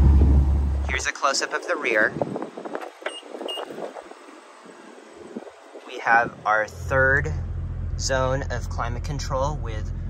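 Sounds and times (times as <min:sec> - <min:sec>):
faint wind noise: 0:00.0 - 0:10.0.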